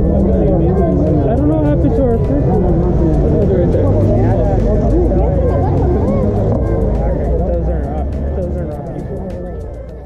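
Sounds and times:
traffic rumble: 0:00.0 - 0:10.0
voices talking: 0:00.0 - 0:10.0.

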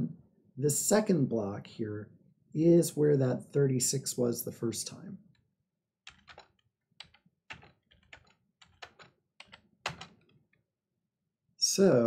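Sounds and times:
faint keyboard typing: 0:06.1 - 0:10.6.

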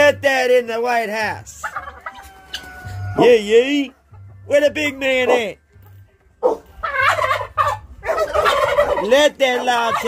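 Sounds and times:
turkey gobbling: 0:01.4 - 0:04.1, 0:05.2 - 0:05.6, 0:06.4 - 0:10.0.

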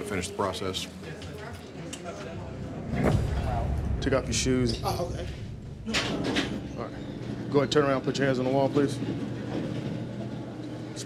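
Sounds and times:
low room hum: 0:01.9 - 0:11.0.

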